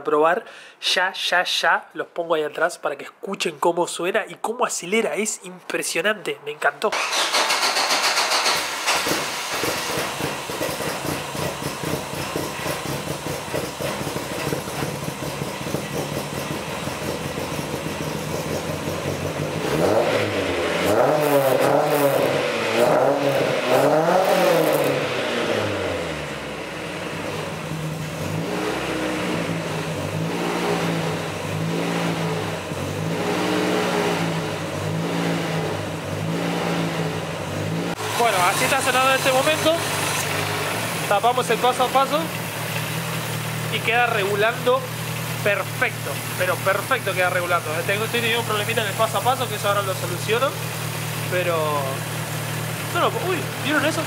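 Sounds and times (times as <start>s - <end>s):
car engine revving at exhaust: 9.2s - 54.0s.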